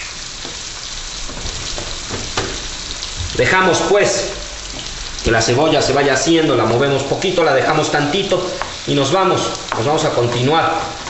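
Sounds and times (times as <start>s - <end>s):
onion sizzling in a frying pan: 0.0s - 11.0s.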